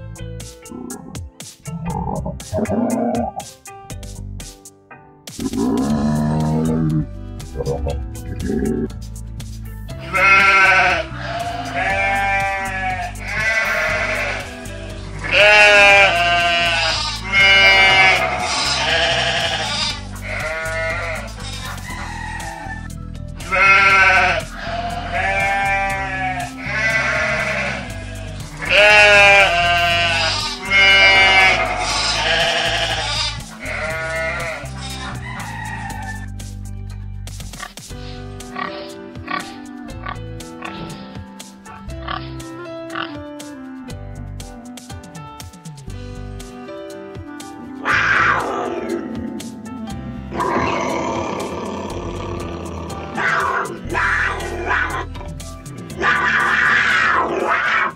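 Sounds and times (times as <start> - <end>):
background music: 0.0 - 57.9
sheep bleating: 10.0 - 22.8, 23.4 - 35.2, 50.3 - 55.1, 56.0 - 57.9.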